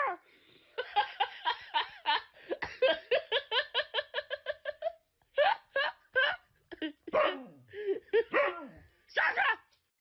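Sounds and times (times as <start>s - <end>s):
dog barking and yowling: 7.1s - 7.6s, 8.3s - 9.7s.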